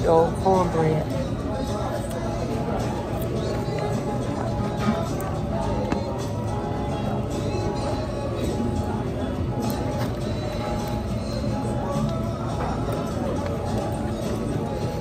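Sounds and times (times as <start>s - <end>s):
background music: 0.0s - 15.0s
murmur of diners talking: 0.0s - 15.0s.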